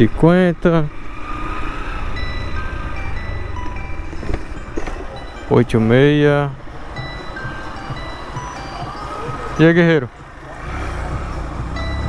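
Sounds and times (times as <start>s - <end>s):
low engine rumble: 0.0s - 12.0s
tinny electronic melody: 2.1s - 12.0s.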